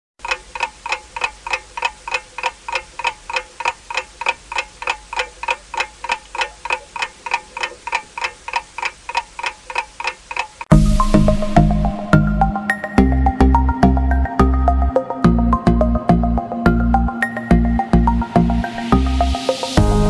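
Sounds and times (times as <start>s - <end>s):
clock ticking: 0.2s - 11.8s, 12.4s - 20.0s.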